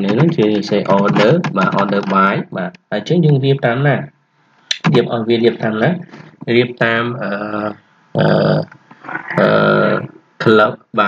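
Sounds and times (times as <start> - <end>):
man making drawn-out speech sounds: 0.0 - 4.1, 4.7 - 8.6, 9.3 - 11.0.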